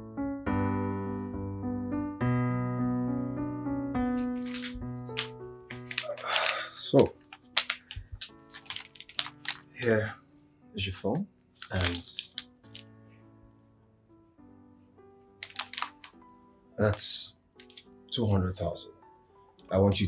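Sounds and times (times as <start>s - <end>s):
soft music of held chords: 0.0s - 20.0s
small clicks: 15.4s - 16.2s.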